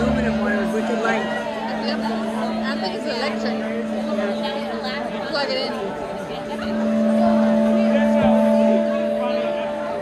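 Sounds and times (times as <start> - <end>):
crowd chatter: 0.0 - 10.0
steady held note droning: 0.0 - 10.0.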